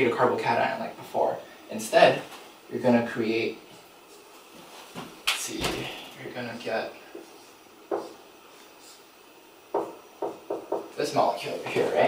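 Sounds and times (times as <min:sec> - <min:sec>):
marker knocking on whiteboard: 0:07.9 - 0:08.2, 0:09.7 - 0:11.0.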